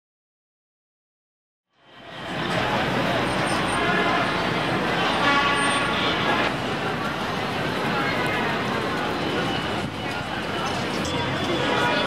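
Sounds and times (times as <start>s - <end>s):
traffic noise: 1.7s - 12.0s
crowd chatter: 1.9s - 12.0s
vehicle horn: 3.8s - 6.5s.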